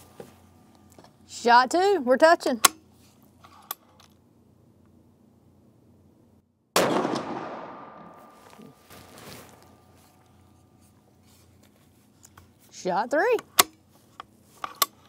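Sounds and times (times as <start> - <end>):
rifle shot with echo: 6.8 - 8.5.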